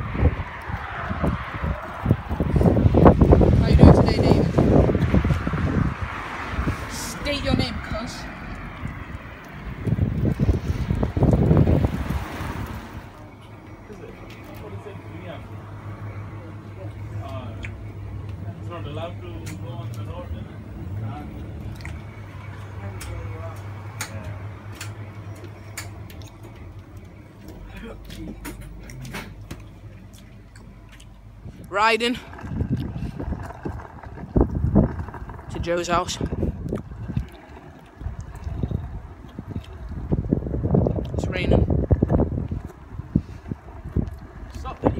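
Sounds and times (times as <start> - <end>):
wind buffeting microphone: 0.0 - 13.3, 15.5 - 44.9
steady low hum: 0.0 - 44.9.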